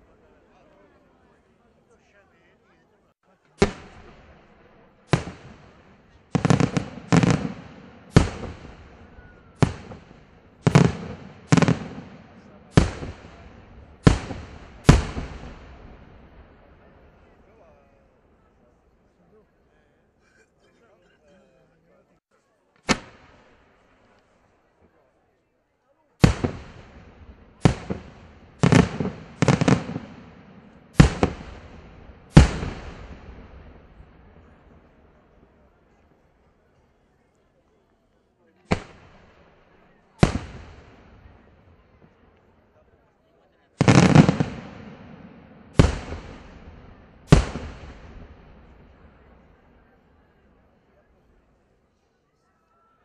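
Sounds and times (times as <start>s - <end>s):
crackling firework reports: 3.6s - 17.4s, 22.8s - 24.2s, 26.2s - 35.3s, 38.7s - 42.5s, 43.8s - 50.6s
firework shells bursting: 27.6s - 33.6s, 43.8s - 49.1s.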